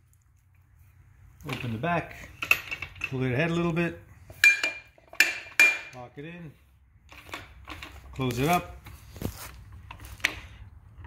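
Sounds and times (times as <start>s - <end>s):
ringing metal clanks of pipe: 4.3s - 6.0s.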